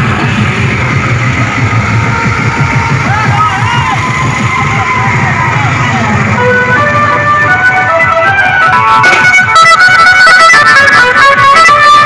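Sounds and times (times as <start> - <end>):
loud music with heavy bass: 0.0 - 12.0.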